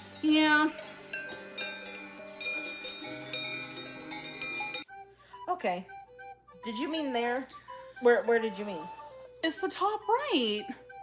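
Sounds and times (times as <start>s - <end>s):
cowbells clanking: 0.0s - 4.9s.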